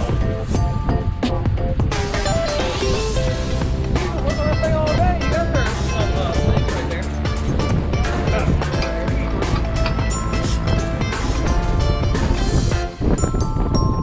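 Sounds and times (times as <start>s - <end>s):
steady drum beat: 0.0s - 13.0s.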